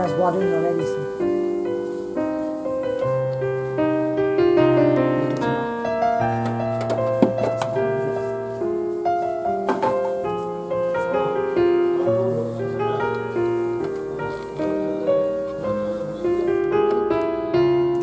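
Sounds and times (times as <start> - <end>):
background piano music: 0.0 - 18.0.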